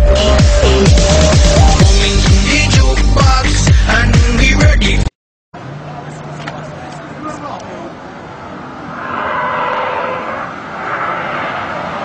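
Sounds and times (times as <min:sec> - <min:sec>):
car tyres screeching: 0:08.4 - 0:12.0.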